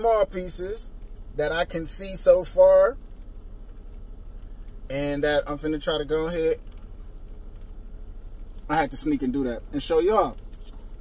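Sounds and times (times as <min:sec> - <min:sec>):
man speaking: 0:00.0 - 0:03.0, 0:04.9 - 0:06.6, 0:08.7 - 0:10.4
low steady car cabin hum: 0:00.0 - 0:11.0.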